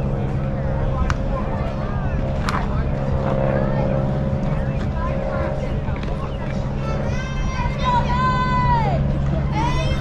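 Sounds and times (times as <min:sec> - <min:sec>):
distant voices calling out: 0:00.0 - 0:10.0
steady mechanical hum: 0:00.0 - 0:10.0.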